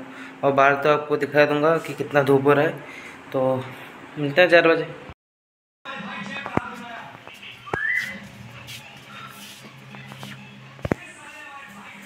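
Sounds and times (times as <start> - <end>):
rising whistled note: 7.6 - 8.2.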